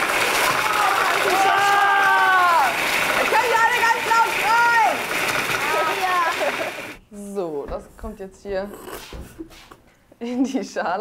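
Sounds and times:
children calling out: 0.3s - 2.8s.

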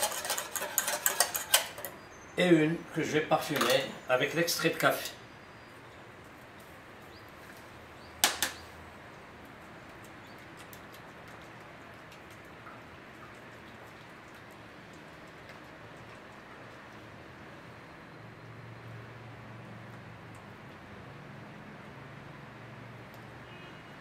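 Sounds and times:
spatula stirring in metal bowl: 0.0s - 2.0s.

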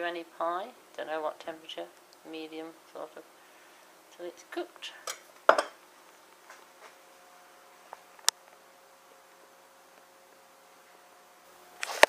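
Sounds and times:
faint steady hum: 0.0s - 12.0s
pie dish clunk on surface: 5.1s - 5.8s.

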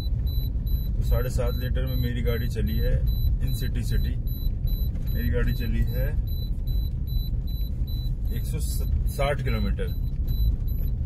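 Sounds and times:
car warning chime beeping: 0.0s - 11.0s
low rumble of car: 0.0s - 11.0s.

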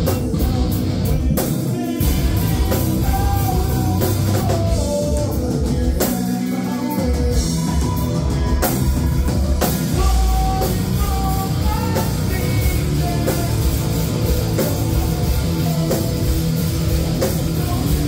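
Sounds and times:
drum kit: 0.0s - 18.0s
electric guitar: 0.0s - 18.0s.

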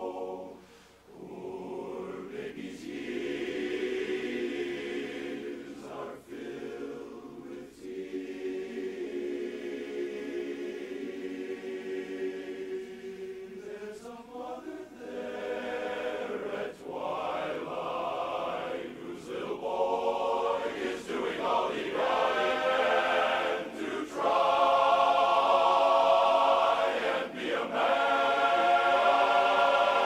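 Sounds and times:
men's chorus singing a cappella: 0.0s - 30.0s.

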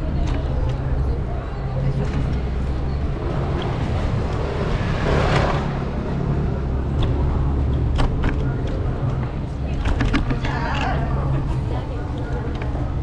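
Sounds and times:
low rumble of traffic: 0.0s - 13.0s
vehicle passing close by: 2.4s - 7.6s.

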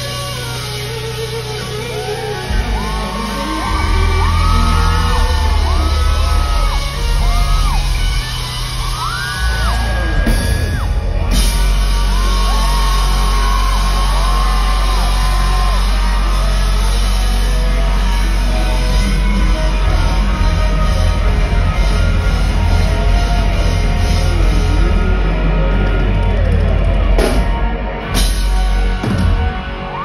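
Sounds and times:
electric guitar lead notes: 0.0s - 30.0s
heavy bass drone: 0.0s - 30.0s
live rock band: 0.0s - 30.0s.

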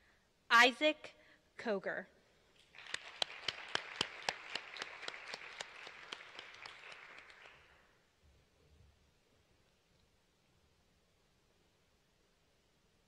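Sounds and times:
audience applauding: 2.6s - 7.9s.

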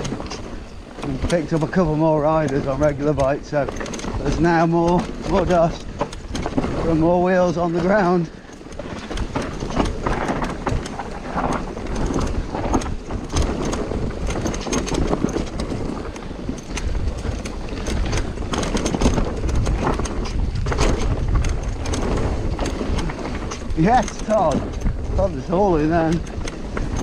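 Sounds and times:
bike rattles and knocks: 0.0s - 27.0s
bike tyres rolling over dirt: 0.0s - 27.0s
wind buffeting microphone: 0.0s - 27.0s.

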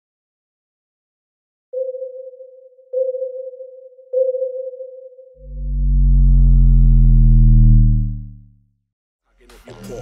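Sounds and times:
deep synthesized bass tone: 5.4s - 8.7s.

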